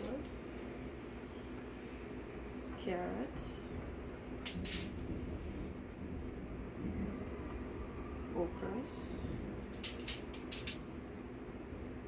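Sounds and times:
aluminium foil crinkling: 0:09.8 - 0:10.8.

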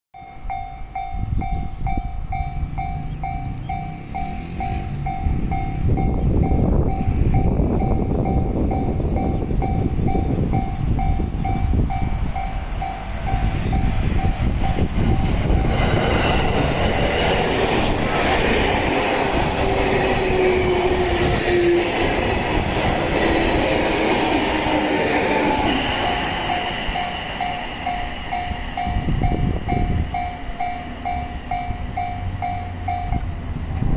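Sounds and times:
level-crossing bell dinging: 0:00.2 - 0:15.8, 0:25.6 - 0:33.3
train wheels and motors rumbling: 0:00.2 - 0:33.9.

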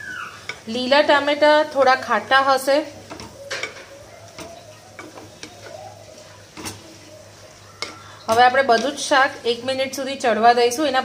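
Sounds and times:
food sizzling in oil: 0:00.0 - 0:11.0
wooden spatula scraping pan: 0:01.6 - 0:09.7.

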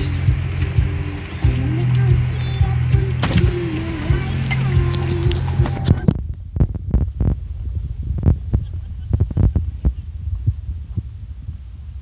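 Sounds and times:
car rumbling over rough road: 0:00.0 - 0:10.4.

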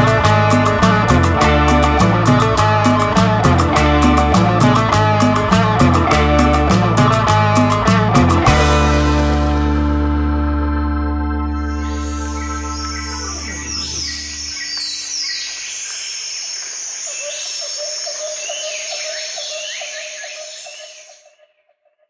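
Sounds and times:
held music chord: 0:00.0 - 0:14.8
bird-like chirps and whistles: 0:11.6 - 0:21.3.

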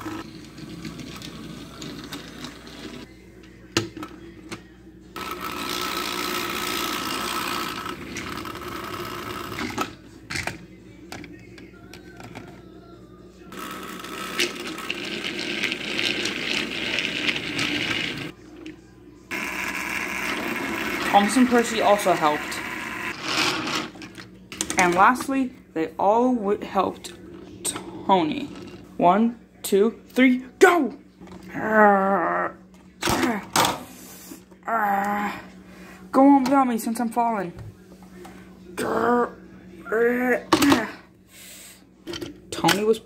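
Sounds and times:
toy train motors running: 0:05.2 - 0:09.7, 0:13.5 - 0:18.3, 0:19.3 - 0:24.0.

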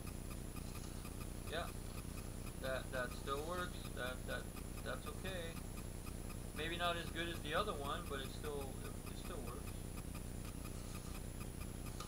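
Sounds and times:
wind-up toy clockwork ticking: 0:00.0 - 0:12.0.

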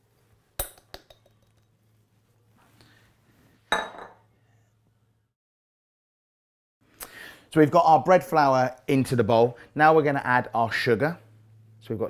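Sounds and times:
glass bowl clinking on metal bowl: 0:03.7 - 0:04.2.

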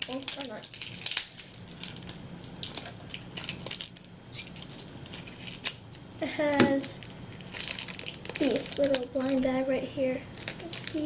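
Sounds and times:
plastic wrapping crackling: 0:00.0 - 0:11.0.

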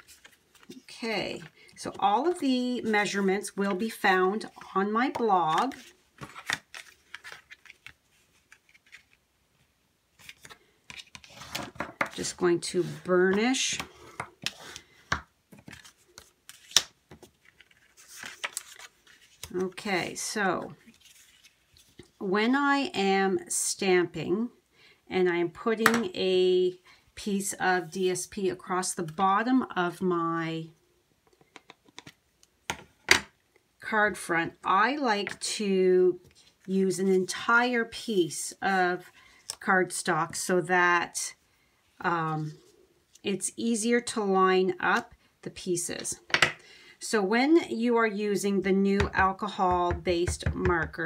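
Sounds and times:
card rustling and tapping: 0:49.0 - 0:51.0.

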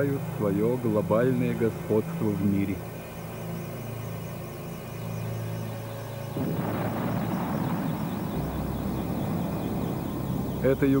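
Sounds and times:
jet engine drone: 0:00.0 - 0:11.0
noisy explosion: 0:06.4 - 0:10.6
deep bass: 0:06.4 - 0:11.0.

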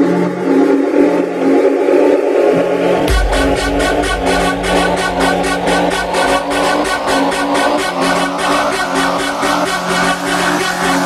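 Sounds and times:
held synth chords: 0:00.0 - 0:11.0
rising noise sweep: 0:02.6 - 0:10.2.

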